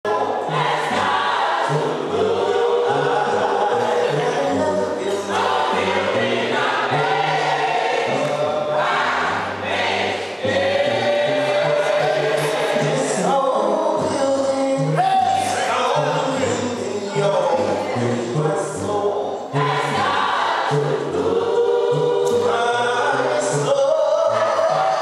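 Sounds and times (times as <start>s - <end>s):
gospel choir singing in harmony: 0.0s - 25.0s.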